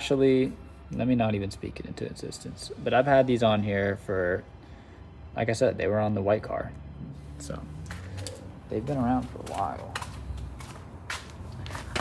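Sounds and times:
footsteps on concrete: 7.8s - 12.0s.

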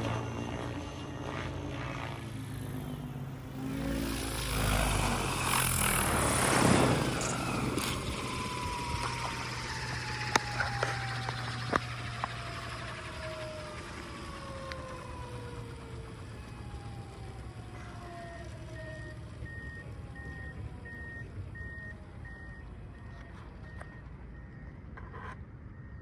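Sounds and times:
helicopter rotors spooling down: 0.0s - 25.0s.

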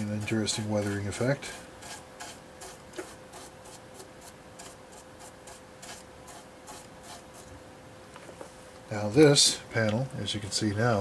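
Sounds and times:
paintbrush scrubbing plastic: 0.0s - 7.6s.

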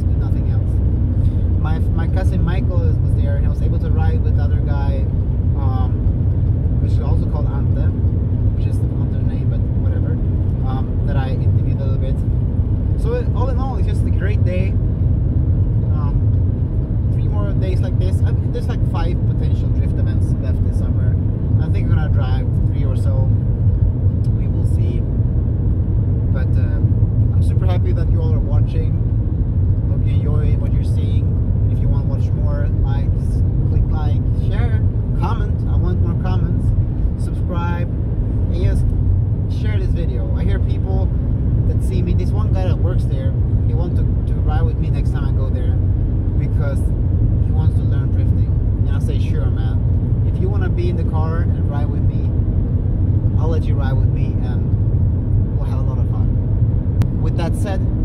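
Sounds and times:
car engine and tyre drone: 0.0s - 58.0s.

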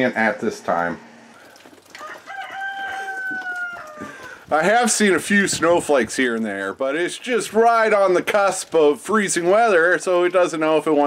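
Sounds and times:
rooster crowing: 2.0s - 4.4s.

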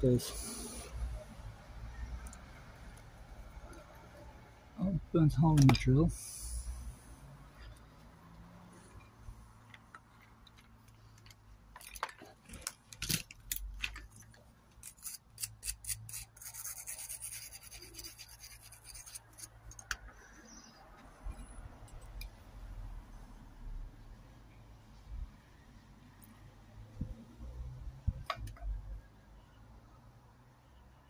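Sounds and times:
scratchy rubbing: 14.8s - 19.7s.

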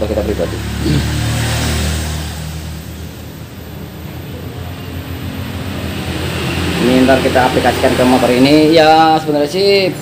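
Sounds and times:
vehicle engine running unevenly: 0.0s - 10.0s.

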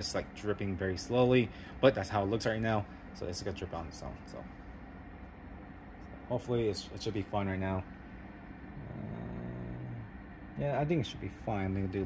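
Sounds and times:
steady background noise: 0.0s - 12.0s
man humming: 8.8s - 10.2s.

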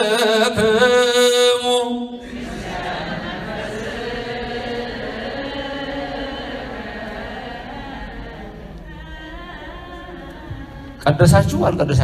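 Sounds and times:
group chanting a slow hymn: 0.0s - 11.8s.

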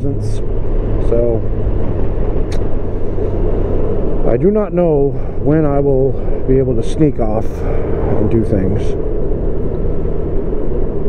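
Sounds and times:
motorcycle engine running: 0.0s - 11.0s
wind and road noise: 0.0s - 11.0s.

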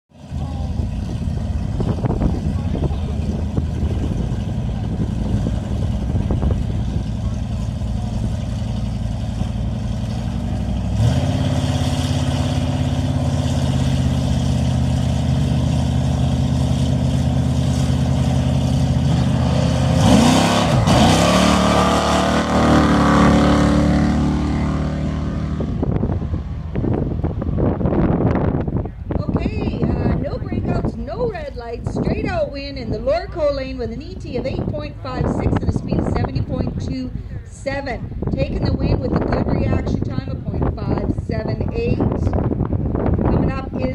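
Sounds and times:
drag car engines revving: 0.2s - 43.9s.

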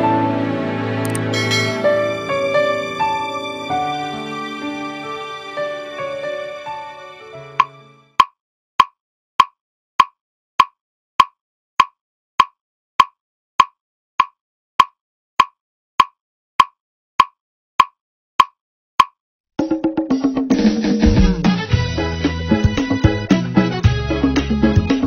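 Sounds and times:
music: 0.0s - 8.2s, 19.6s - 25.0s.

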